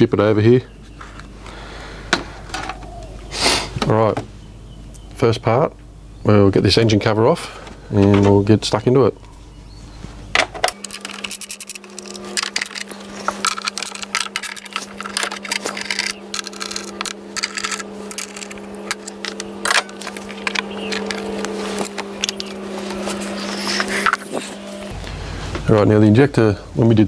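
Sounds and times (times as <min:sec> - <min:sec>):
steady low hum: 0:00.0 - 0:27.0
metal tools clinking: 0:10.6 - 0:24.7.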